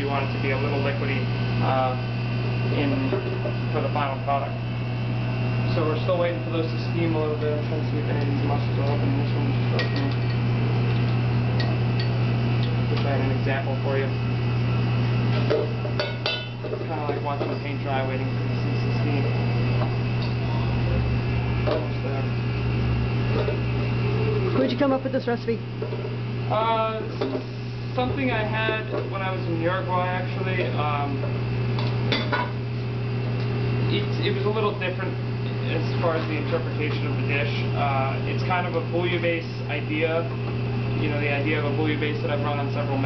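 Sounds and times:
kitchen ventilation hum: 0.0 - 43.0.

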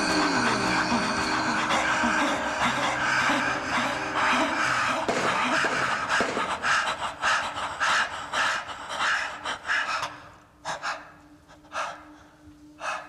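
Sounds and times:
person panting heavily: 0.0 - 13.0.

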